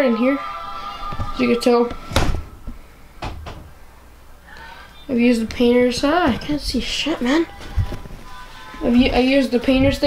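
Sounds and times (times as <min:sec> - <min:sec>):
knocks: 0:03.2 - 0:03.7.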